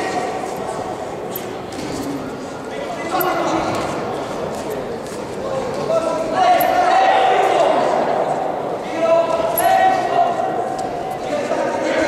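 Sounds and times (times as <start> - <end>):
people shouting: 6.0 - 8.2.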